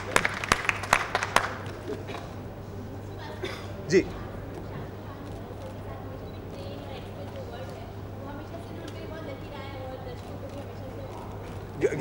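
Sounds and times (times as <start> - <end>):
scattered clapping: 0.0 - 2.3.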